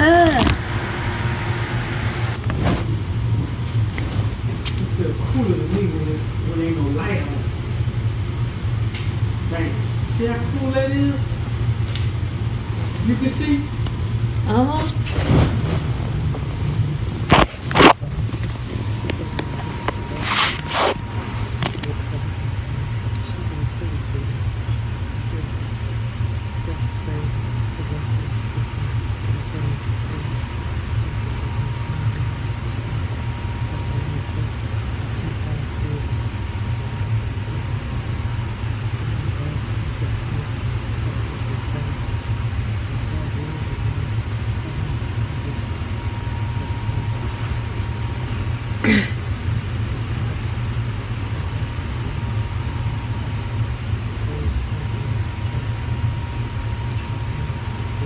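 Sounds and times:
steady low hum: 0:00.0 - 0:58.0
steady low rumble: 0:00.0 - 0:58.0
microphone handling rustle: 0:02.4 - 0:04.9, 0:14.8 - 0:21.9.

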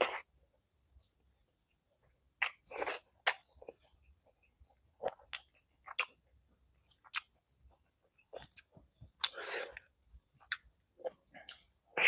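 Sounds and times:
person chewing and mouth smacks: 0:02.3 - 0:12.0.

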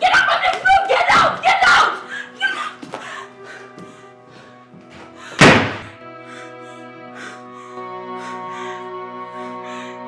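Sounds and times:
door slamming shut: 0:05.4 - 0:05.9.

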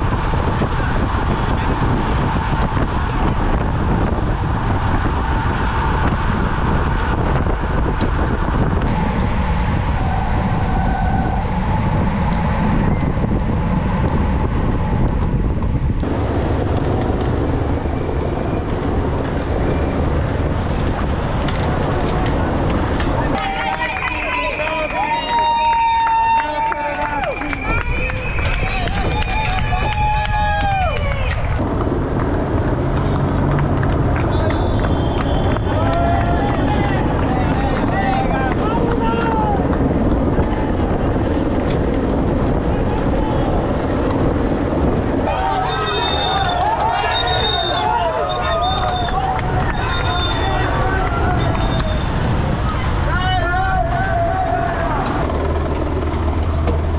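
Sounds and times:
bicycle tyre noise: 0:00.0 - 0:56.9
wind noise: 0:00.0 - 0:56.9
spectators shouting encouragement: 0:23.3 - 0:31.6, 0:45.2 - 0:55.5.

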